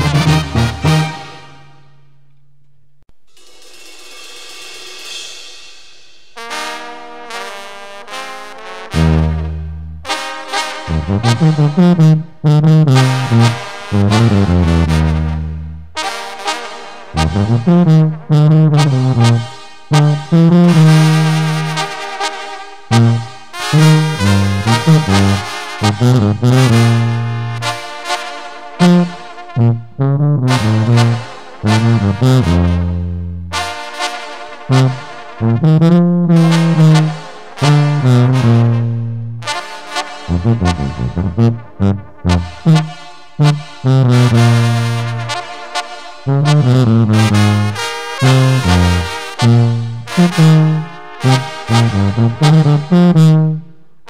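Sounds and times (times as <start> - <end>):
brass band playing: 0.0 - 2.0, 6.3 - 53.8.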